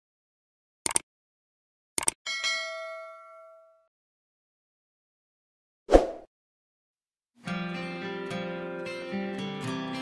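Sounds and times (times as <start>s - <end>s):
notification bell ding: 2.3s - 3.8s.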